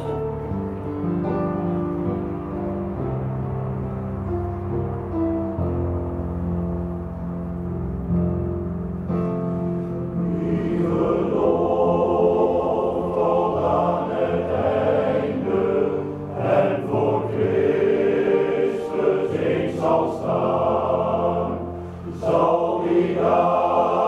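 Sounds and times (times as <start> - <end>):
men's choir singing in harmony: 10.1 - 24.0.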